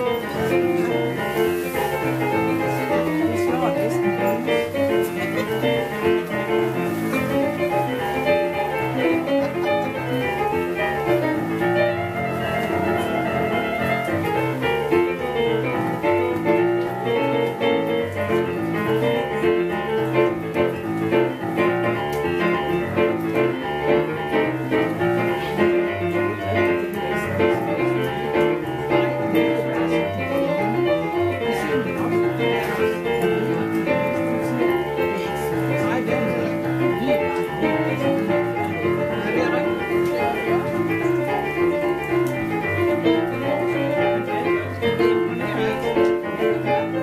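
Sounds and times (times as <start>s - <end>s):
boogie-woogie blues piano: 0.0s - 47.0s.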